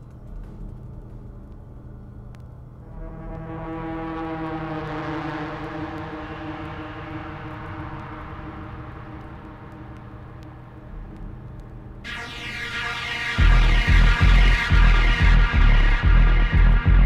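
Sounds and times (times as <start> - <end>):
sustained synth drone chord: 2.8 - 10.9, 12.1 - 17.0
hissing noise sweep: 12.1 - 17.0.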